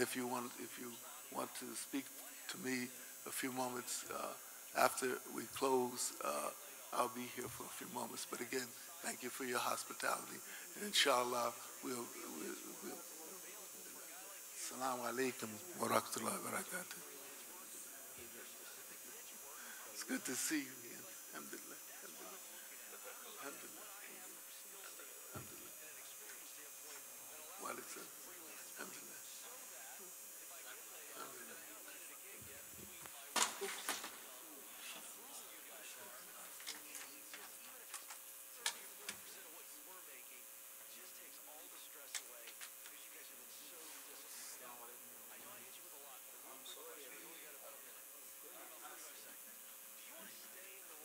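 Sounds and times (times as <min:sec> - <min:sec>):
man speaking: 0:00.0 - 0:37.3
faint murmur of voices: 0:00.0 - 0:51.0.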